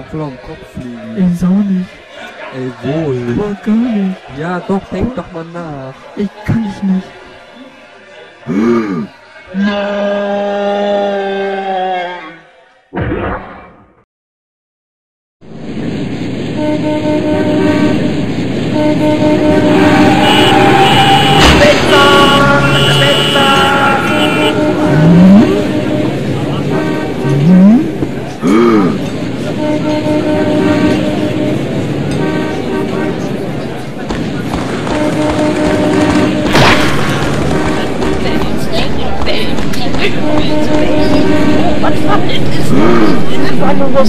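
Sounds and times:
traffic noise: 0.0 - 10.0, 15.4 - 44.0
car horns honking: 16.6 - 44.0.

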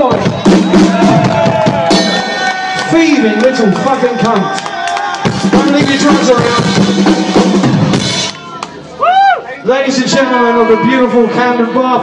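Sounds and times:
drum kit hits: 0.1 - 2.9, 5.2 - 8.4.

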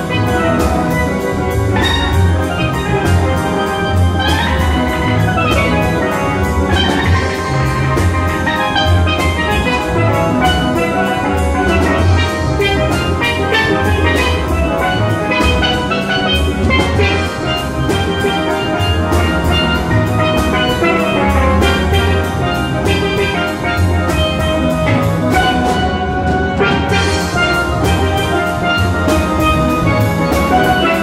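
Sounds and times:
drum kit beat: 0.0 - 31.0
steel pans playing: 0.0 - 31.0.

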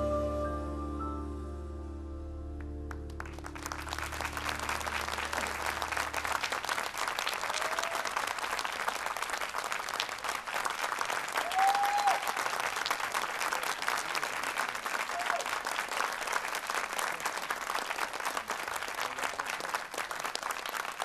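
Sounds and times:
audience applauding: 2.6 - 21.0
crowd cheering: 3.0 - 21.0.

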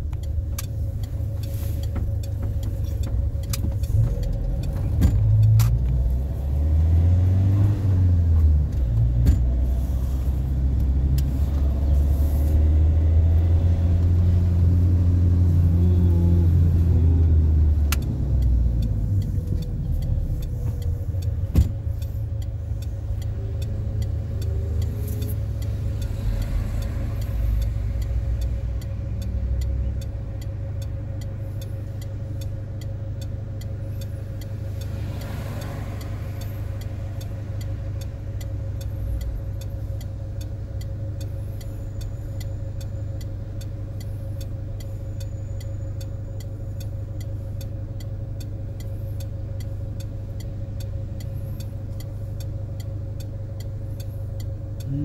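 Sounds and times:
car engine and road rumble: 0.0 - 55.0.

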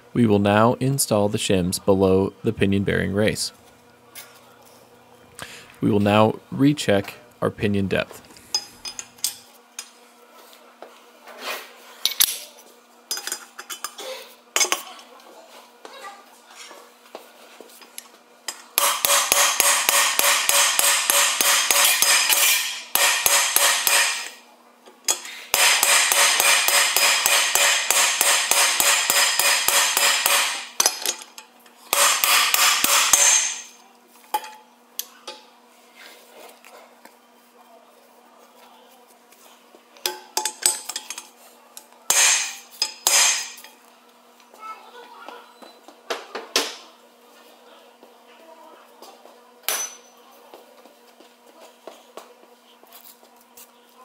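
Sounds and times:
hammering on steel: 18.8 - 24.4, 25.5 - 31.0, 31.9 - 33.8, 42.1 - 43.6.

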